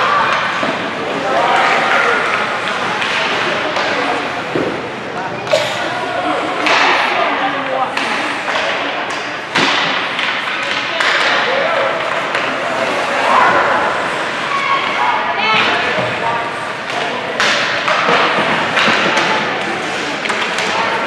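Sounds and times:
indistinct shouting and chatter: 0:00.0 - 0:21.0
hockey sticks and puck knocking: 0:00.2 - 0:04.8, 0:06.6 - 0:14.4, 0:16.8 - 0:21.0
puck thuds against boards: 0:17.4 - 0:19.5.

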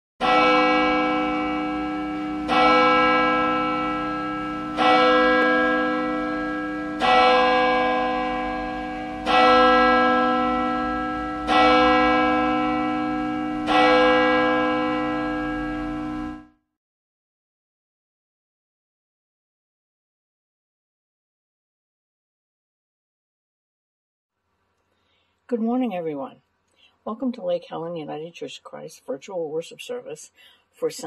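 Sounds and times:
church bell tolling: 0:00.2 - 0:16.6.

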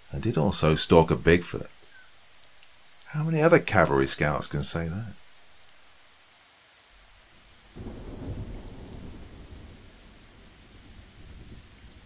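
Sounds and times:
steady rain falling: 0:00.0 - 0:12.0
low roll of thunder: 0:07.6 - 0:12.0.

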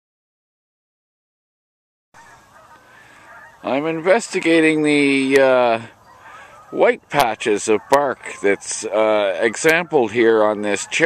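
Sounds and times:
faint outdoor background noise: 0:02.2 - 0:11.0.

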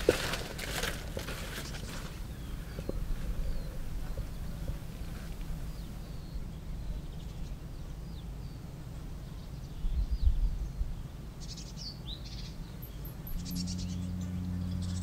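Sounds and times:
small birds chirping and trilling: 0:00.0 - 0:15.0
steady low hum: 0:00.0 - 0:15.0
low rumble: 0:12.9 - 0:15.0.

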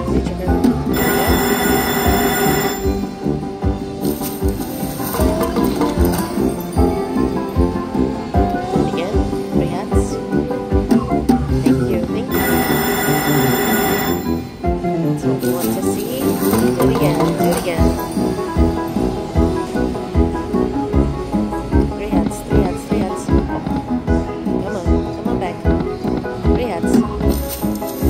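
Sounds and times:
bright chiming jingle: 0:00.9 - 0:03.2, 0:12.3 - 0:14.5
slot machine bonus music: 0:00.9 - 0:08.9, 0:11.8 - 0:19.6, 0:26.9 - 0:28.0.

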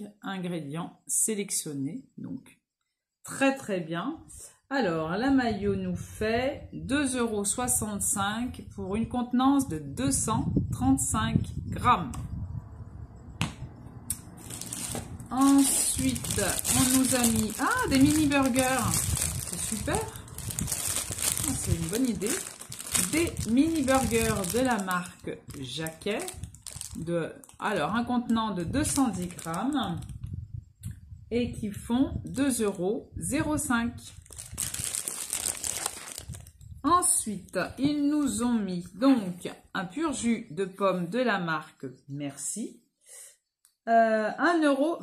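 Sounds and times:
plastic bag crinkling: 0:14.1 - 0:28.0, 0:28.8 - 0:30.2, 0:34.2 - 0:36.7
faint handling noise: 0:14.4 - 0:27.6.

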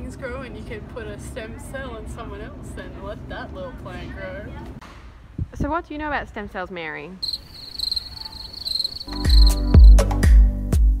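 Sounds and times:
crickets chirping: 0:07.2 - 0:10.0
music with heavy bass beat: 0:09.1 - 0:11.0.

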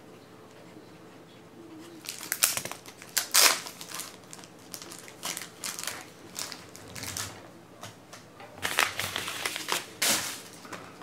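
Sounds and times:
plastic packaging crinkling: 0:02.0 - 0:07.4, 0:08.6 - 0:10.7.

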